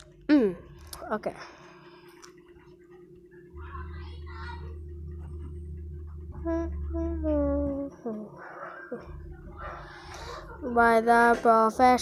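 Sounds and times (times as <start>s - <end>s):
low electrical hum: 0.0s - 12.0s
breathy sound: 9.6s - 10.5s.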